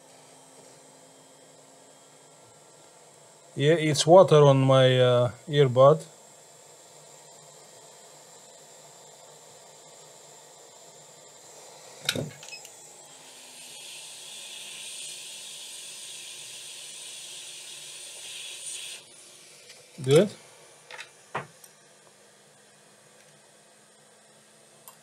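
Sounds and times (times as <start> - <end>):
blown air hissing: 13.1 - 20.7.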